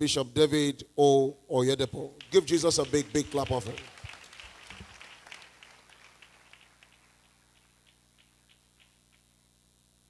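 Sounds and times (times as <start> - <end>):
congregation applauding: 2.2 - 9.0.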